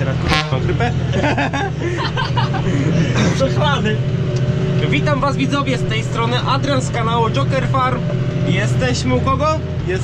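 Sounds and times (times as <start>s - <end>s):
tractor engine running: 0.0s - 10.0s
voices: 0.0s - 10.0s.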